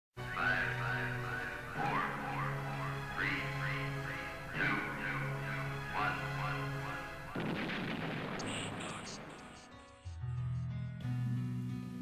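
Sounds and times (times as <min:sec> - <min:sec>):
sudden burst of noise: 0:07.4 - 0:09.6.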